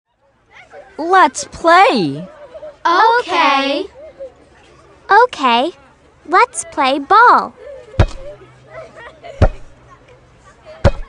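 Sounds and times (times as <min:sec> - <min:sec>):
rubber ball bouncing: 0:08.0 - 0:08.3, 0:09.4 - 0:09.7.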